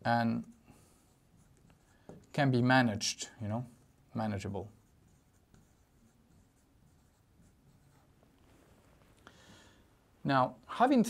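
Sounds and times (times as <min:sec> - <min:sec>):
marker writing on whiteboard: 0:00.4 - 0:02.6, 0:03.7 - 0:08.3.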